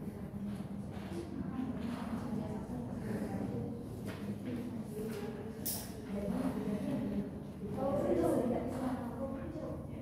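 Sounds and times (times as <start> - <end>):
low chatter of voices: 0.0 - 10.0.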